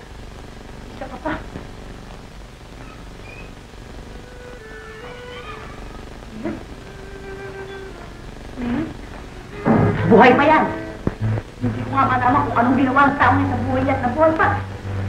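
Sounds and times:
soft film score music: 4.2s - 15.0s
pitched moaning cries: 4.3s - 11.0s.

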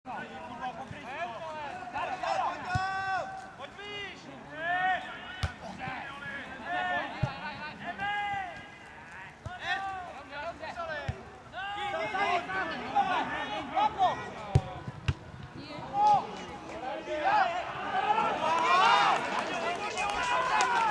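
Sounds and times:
players shouting: 1.0s - 14.9s, 15.6s - 20.9s.

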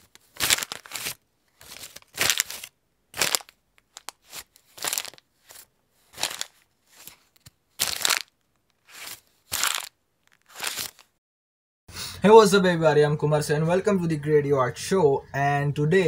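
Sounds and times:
paper rustling and crunching: 0.0s - 11.1s.

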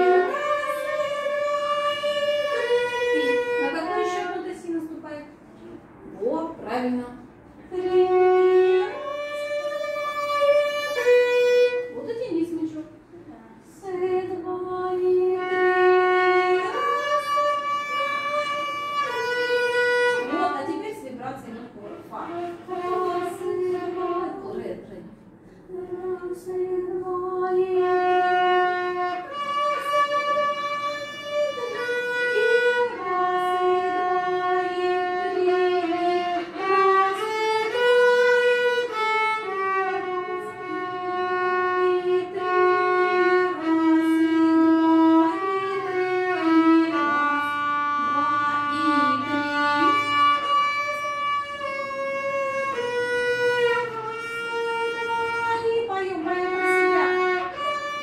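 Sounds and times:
violin slow melody: 0.0s - 4.6s, 7.6s - 12.5s, 14.2s - 21.0s, 25.7s - 58.0s.

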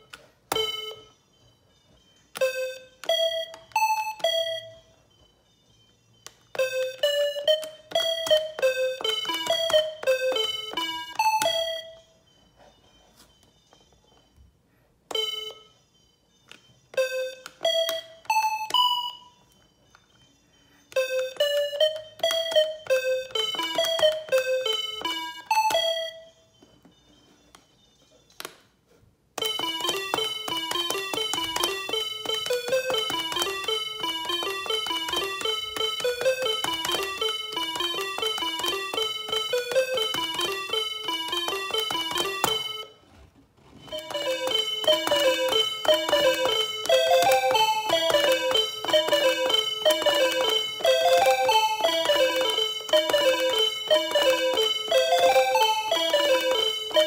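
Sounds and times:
electronic calculator beep melody: 0.0s - 14.5s, 15.1s - 28.3s, 29.4s - 43.0s, 43.7s - 57.0s.

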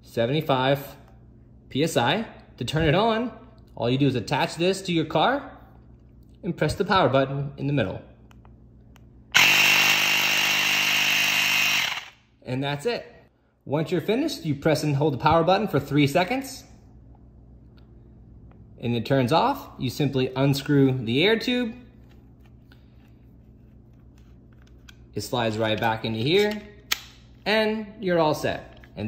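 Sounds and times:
low steady hum: 0.0s - 29.0s
air compressor whining: 9.3s - 12.2s
faint clicks and handling noise: 22.0s - 27.2s, 28.6s - 29.0s.

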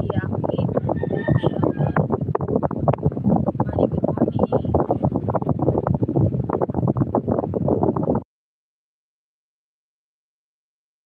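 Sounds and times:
dense flickering crackle: 0.0s - 8.2s
rough rumbling on phone microphone: 0.0s - 8.2s.

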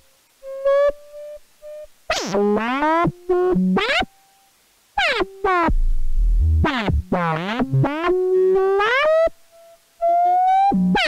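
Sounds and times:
synth gliding notes: 5.7s - 7.0s.

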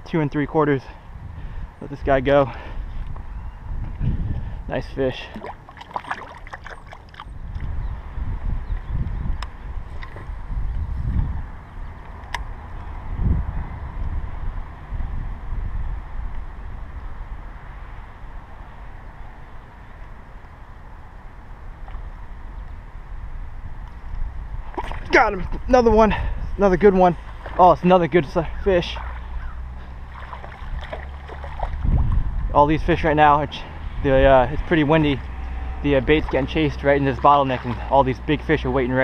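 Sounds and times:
wind buffeting microphone: 0.0s - 39.0s
water splash: 5.2s - 7.3s, 24.7s - 25.3s, 30.0s - 32.2s, 36.2s - 38.0s.

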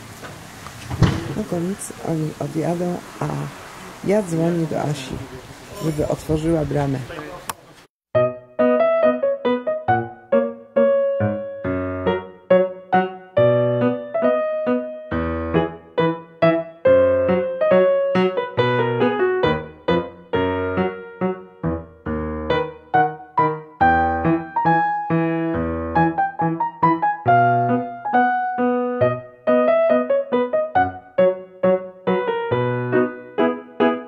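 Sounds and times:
solo piano music: 8.1s - 34.0s.

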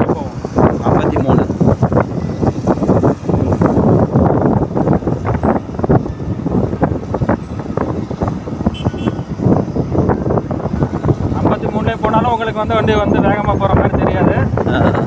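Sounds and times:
scooter road noise: 0.0s - 15.0s
wind buffeting microphone: 0.0s - 15.0s.

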